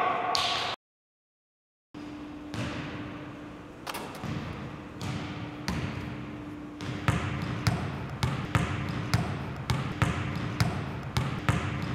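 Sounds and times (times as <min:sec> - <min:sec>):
basketball dribbling: 0:04.2 - 0:06.2, 0:06.8 - 0:11.9.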